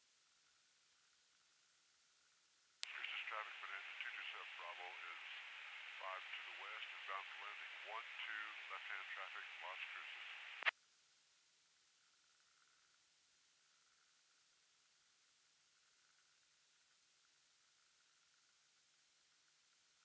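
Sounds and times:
tinny radio voice transmission: 0:02.8 - 0:10.7.

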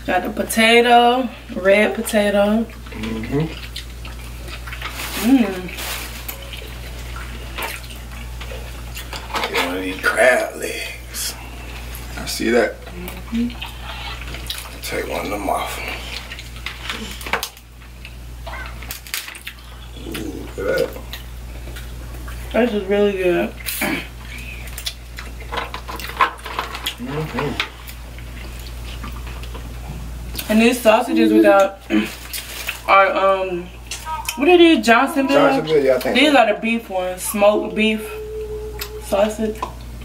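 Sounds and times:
steady low hum: 0:00.0 - 0:40.0
wet chewing and smacking: 0:02.2 - 0:09.3, 0:11.3 - 0:22.6, 0:23.4 - 0:30.6, 0:31.5 - 0:32.9, 0:33.7 - 0:34.5, 0:37.7 - 0:40.0
crab shells cracking: 0:16.1 - 0:21.9, 0:24.4 - 0:29.7
person humming: 0:20.0 - 0:20.9, 0:27.0 - 0:27.7, 0:37.2 - 0:39.3.

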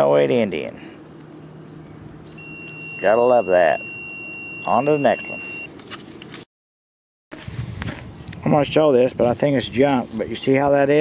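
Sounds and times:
low steady hum: 0:00.0 - 0:05.7
metal detector tone: 0:02.4 - 0:05.7.

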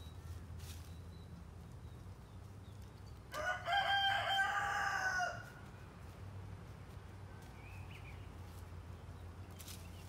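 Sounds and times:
rooster crowing: 0:03.3 - 0:05.6.

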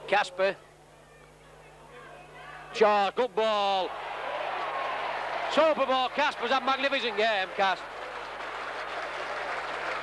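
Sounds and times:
crowd applauding and cheering: 0:03.9 - 0:10.0.

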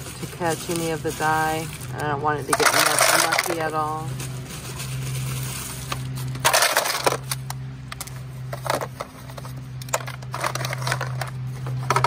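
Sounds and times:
ice cubes crunching and clinking: 0:00.0 - 0:07.5.

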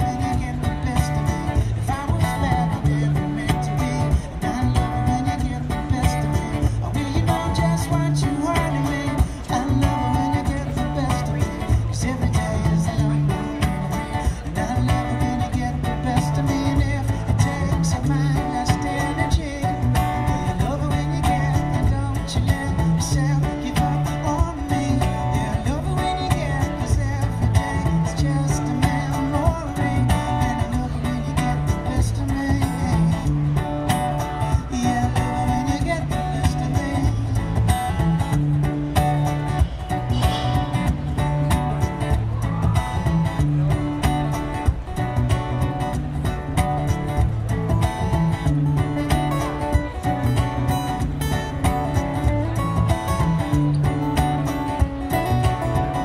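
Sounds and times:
acoustic guitar strumming: 0:00.0 - 0:56.0
man singing: 0:00.0 - 0:56.0.

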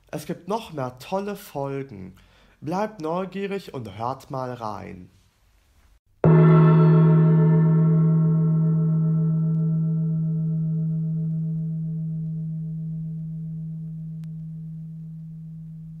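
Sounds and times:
gong ringing: 0:06.2 - 0:16.0.

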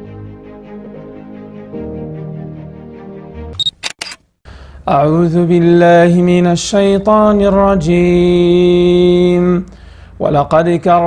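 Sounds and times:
background music: 0:00.0 - 0:03.6
camera shutter clicks: 0:03.6 - 0:04.2
short high beep: 0:03.6 - 0:04.2
man reciting: 0:04.8 - 0:11.0.

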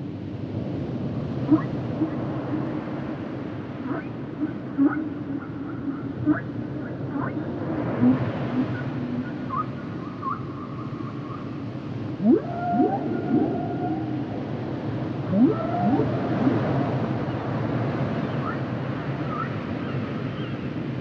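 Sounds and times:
steady background hiss: 0:00.0 - 0:21.0
whale song moans and whoops: 0:03.8 - 0:11.5, 0:12.2 - 0:17.3.

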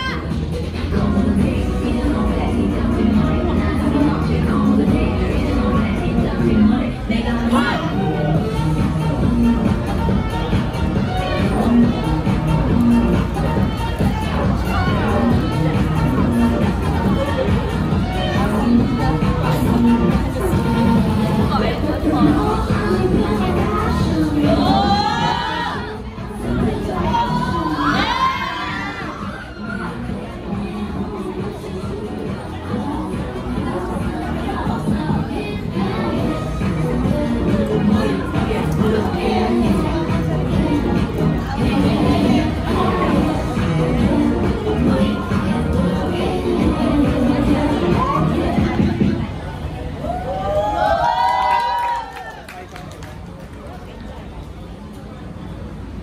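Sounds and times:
crowd cheering and shouting: 0:00.0 - 0:01.6, 0:05.7 - 0:52.8
pop music: 0:00.0 - 0:49.3
open-air background noise: 0:00.0 - 0:56.0.

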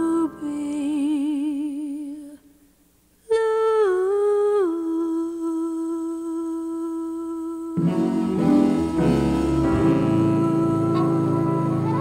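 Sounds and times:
woman humming: 0:04.5 - 0:12.0
instrumental accompaniment: 0:07.8 - 0:12.0.

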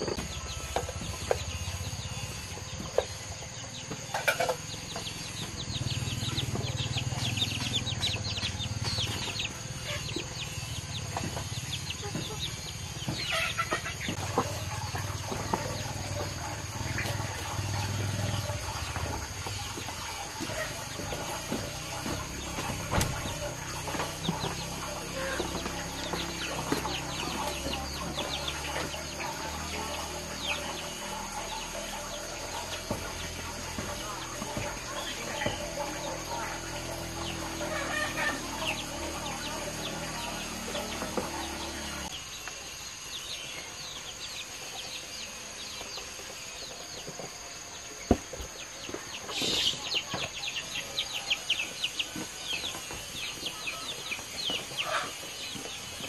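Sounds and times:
chickens clucking: 0:00.0 - 0:56.0.

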